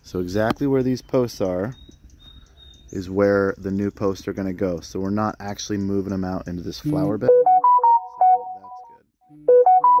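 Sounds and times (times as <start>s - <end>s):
phone ringtone melody: 7.0s - 10.0s.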